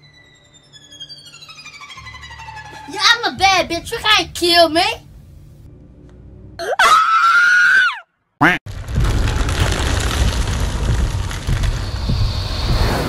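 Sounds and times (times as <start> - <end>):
high-pitched scream: 0.0 - 3.0, 6.6 - 8.1
steady loud low noise: 3.4 - 6.6.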